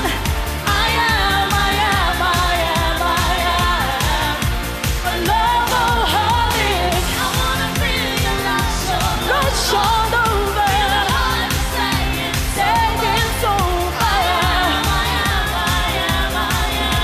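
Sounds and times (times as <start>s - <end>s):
pop backing track with dance beat: 0.0s - 17.0s
woman singing: 0.0s - 17.0s.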